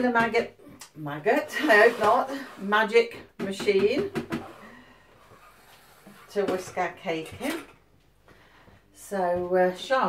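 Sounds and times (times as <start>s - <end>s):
woman's voice: 0.0s - 4.2s, 6.3s - 7.7s, 9.0s - 10.0s.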